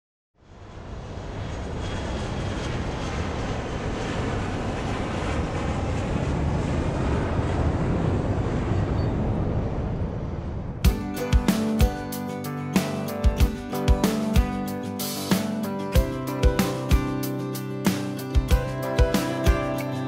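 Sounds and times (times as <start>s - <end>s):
jet engine noise: 0.4s - 10.9s.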